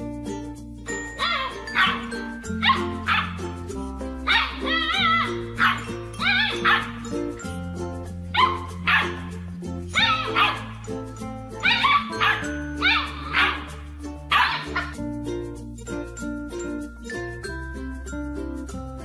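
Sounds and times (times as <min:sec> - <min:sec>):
background music: 0:00.0 - 0:19.0
puppies barking and yipping: 0:00.9 - 0:15.5.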